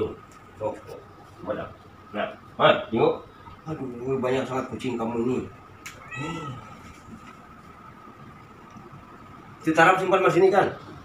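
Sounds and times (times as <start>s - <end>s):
cat meowing: 5.9s - 7.0s.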